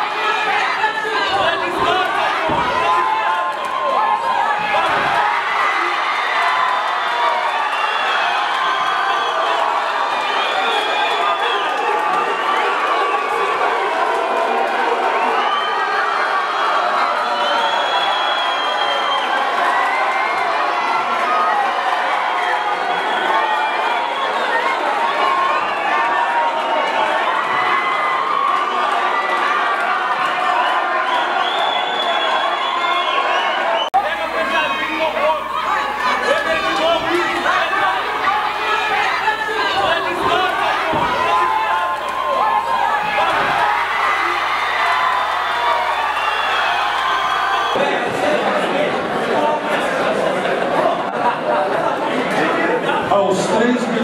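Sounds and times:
crowd cheering and shouting: 0.0 - 54.0.

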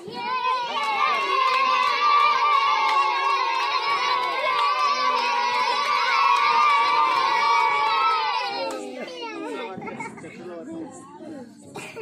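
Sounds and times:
children shouting and cheering: 0.0 - 9.8.

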